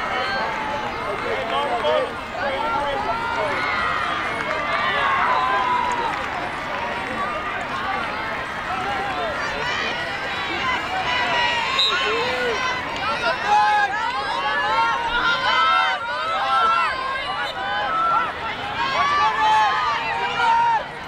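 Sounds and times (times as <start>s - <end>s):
many voices calling out: 0.0s - 21.0s.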